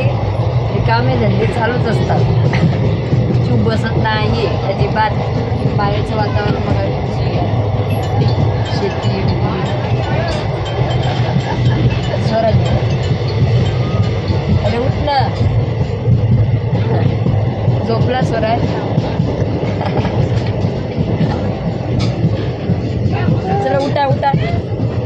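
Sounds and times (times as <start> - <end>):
train carriage rumbling: 0.0 - 25.0.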